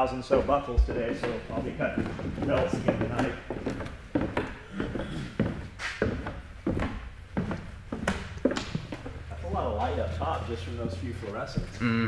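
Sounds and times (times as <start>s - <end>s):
footsteps on concrete: 0.3s - 11.8s.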